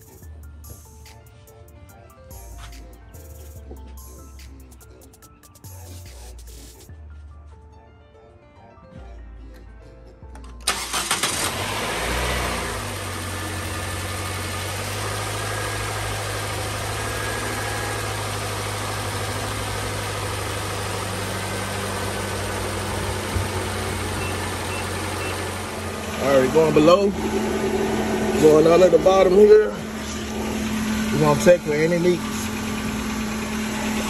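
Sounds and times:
starter motor cranking: 0:10.6 - 0:12.6
car engine idling: 0:10.6 - 0:34.0.

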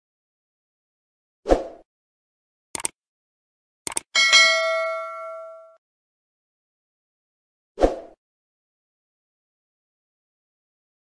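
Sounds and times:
notification bell chime: 0:04.2 - 0:05.8.

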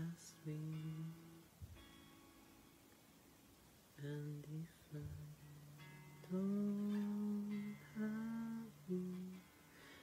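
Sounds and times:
person humming held notes: 0:00.0 - 0:01.9, 0:04.0 - 0:10.0.

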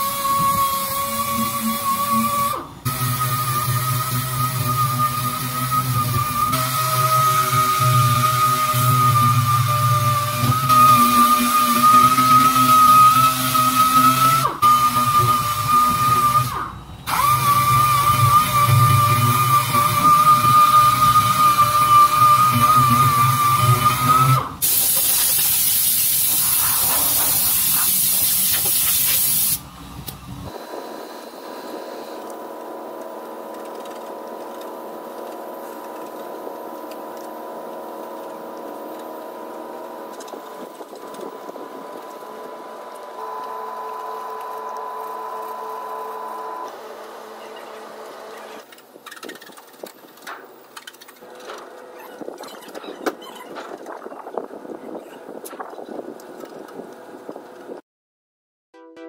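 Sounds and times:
power sander whining: 0:00.0 - 0:24.7, 0:30.5 - 0:48.8
compressed air hissing: 0:24.6 - 0:30.6.

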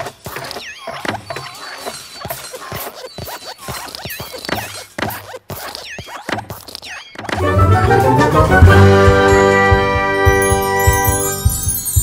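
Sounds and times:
squeaky chirps: 0:00.0 - 0:07.4
cartoon clicks and thumps: 0:00.0 - 0:11.7.

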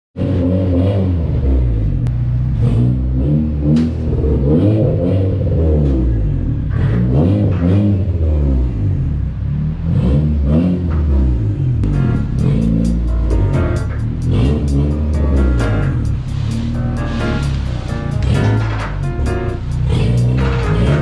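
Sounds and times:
car engine revving: 0:00.2 - 0:21.0
sharp engine cracks: 0:11.8 - 0:21.0.

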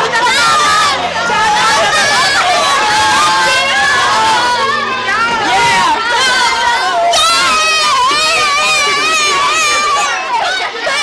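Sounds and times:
children shouting and cheering: 0:00.0 - 0:11.0.

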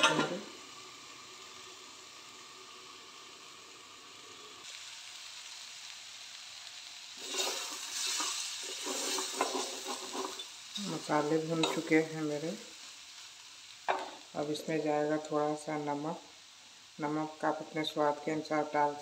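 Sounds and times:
food sizzling in a pan: 0:00.0 - 0:19.0
wooden spatula scraping a pan: 0:07.2 - 0:10.9.

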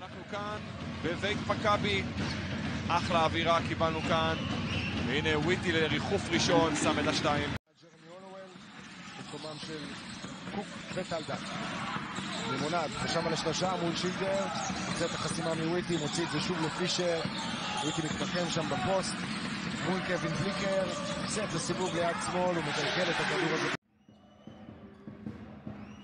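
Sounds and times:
sharp sounds of basketball play: 0:00.0 - 0:26.0
crowd voices: 0:10.4 - 0:23.8.

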